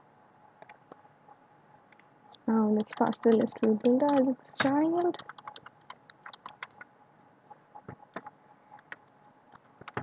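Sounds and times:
typing on computer keyboard: 0:02.7 - 0:06.9, 0:07.9 - 0:10.0.

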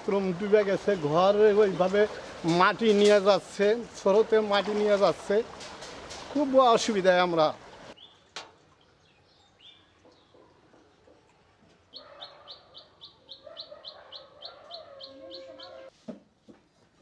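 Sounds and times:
fainter lower bird calls: 0:11.9 - 0:15.9.

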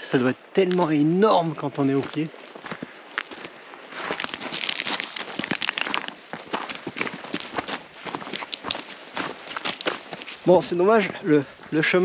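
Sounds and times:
footsteps crunching on gravel: 0:00.0 - 0:12.0.

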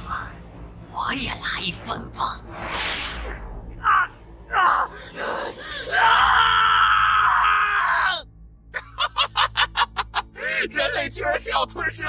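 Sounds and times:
man screaming in agony: 0:04.5 - 0:08.3.

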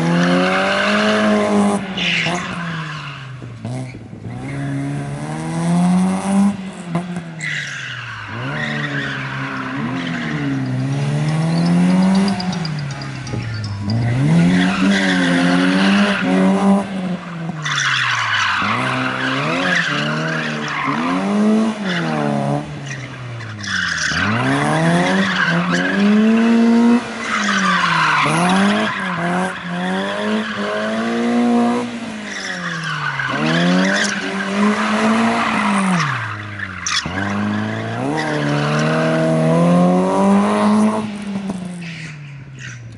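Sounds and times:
car engine revving hard: 0:03.6 - 0:07.2, 0:18.6 - 0:41.7.

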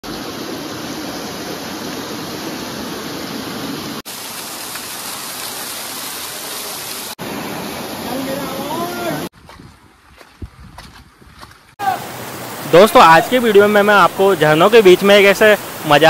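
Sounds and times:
waterfall rushing over rocks: 0:00.0 - 0:09.3, 0:11.8 - 0:16.0.

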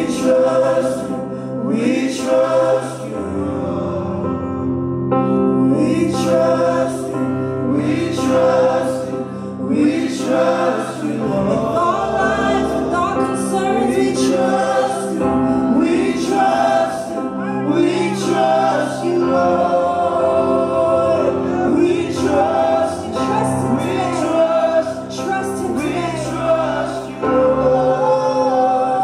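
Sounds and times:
voices singing together: 0:00.0 - 0:04.8, 0:05.5 - 0:29.0
sustained keyboard chords: 0:00.0 - 0:29.0.

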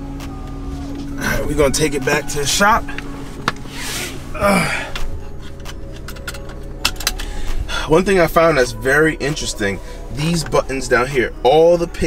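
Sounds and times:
car cabin engine and road hum: 0:00.0 - 0:12.0.

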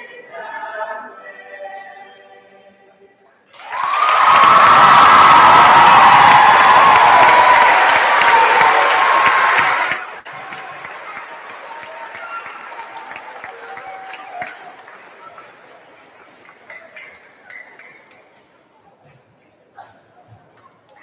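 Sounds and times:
audience applause: 0:03.5 - 0:17.8
crowd murmur with talk: 0:05.3 - 0:21.0.

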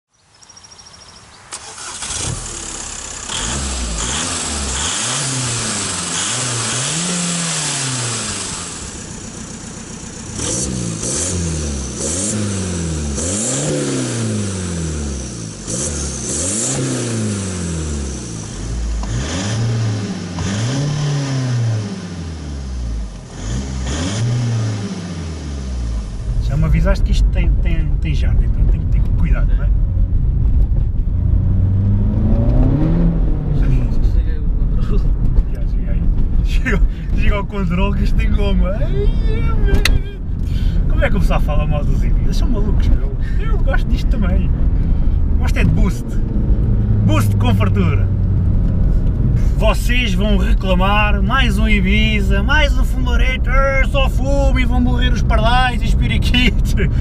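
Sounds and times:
engine low rumble: 0:00.3 - 0:57.0
diesel engine revving: 0:01.5 - 0:57.0.

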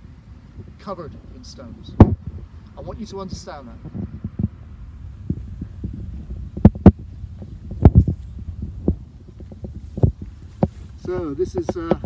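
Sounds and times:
camera handling rumble: 0:05.3 - 0:12.0
dull thumps: 0:06.2 - 0:12.0.

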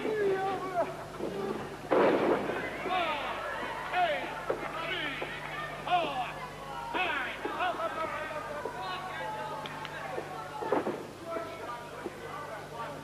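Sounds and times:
crowd shouting: 0:00.0 - 0:11.0
steady low hum: 0:00.0 - 0:13.0.

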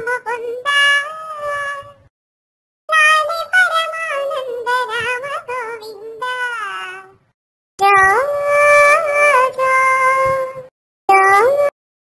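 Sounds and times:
high-pitched cartoon voice singing: 0:00.0 - 0:02.0, 0:02.9 - 0:07.2, 0:07.8 - 0:11.8.

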